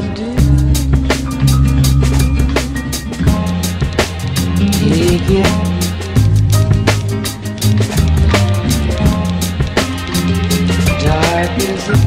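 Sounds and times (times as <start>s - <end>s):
bass line: 0.0s - 12.0s
hip-hop drum beat: 0.4s - 12.0s.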